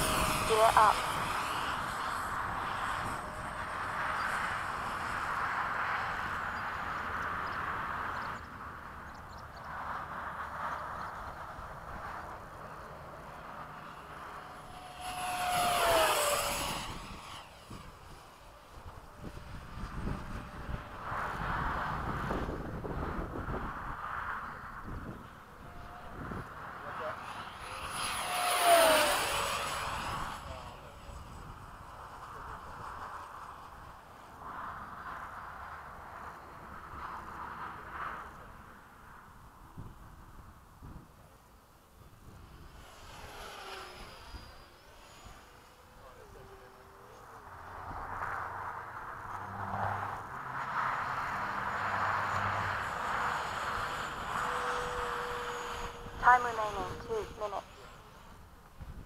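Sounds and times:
model jet fan whine: 0:00.0 - 0:59.0.

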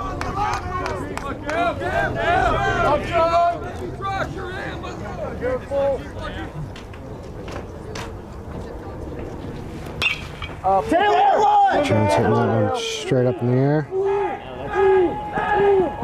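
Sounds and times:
raised voices: 0:00.0 - 0:06.8, 0:10.6 - 0:16.0
crowd murmur: 0:00.0 - 0:16.0.

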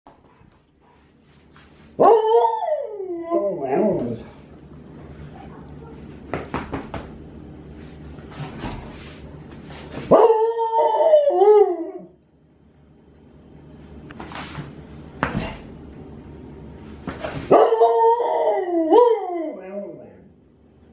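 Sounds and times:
husky howling: 0:02.0 - 0:04.3, 0:10.1 - 0:12.2, 0:17.5 - 0:20.3.

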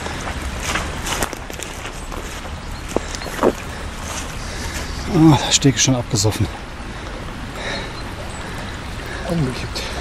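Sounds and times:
footsteps on grass: 0:00.2 - 0:05.0.

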